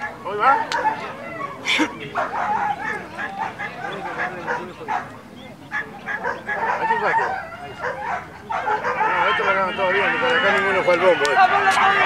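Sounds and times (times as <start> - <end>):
dogs yelping and whining: 0.0 - 10.0.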